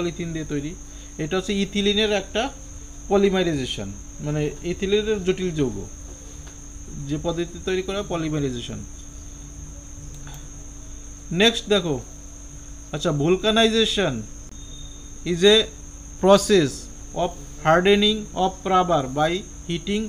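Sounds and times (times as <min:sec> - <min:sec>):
man speaking: 0:00.0 - 0:05.9, 0:06.9 - 0:08.9, 0:11.3 - 0:12.1, 0:13.0 - 0:14.3, 0:15.3 - 0:20.0
steady high-pitched whine: 0:00.0 - 0:20.0.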